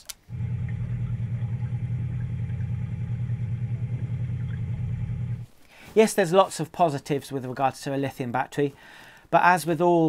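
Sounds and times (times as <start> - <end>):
engine idling: 0.3 - 5.4.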